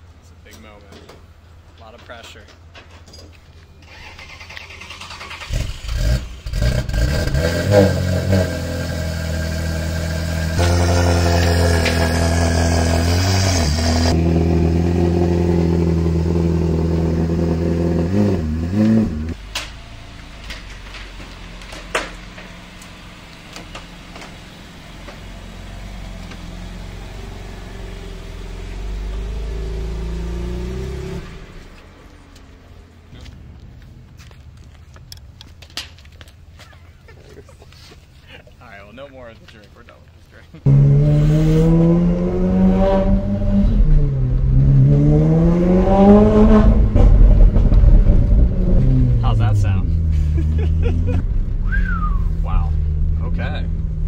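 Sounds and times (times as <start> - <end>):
car engine fast idle and revving: 3.9 - 35.7, 40.6 - 54.0.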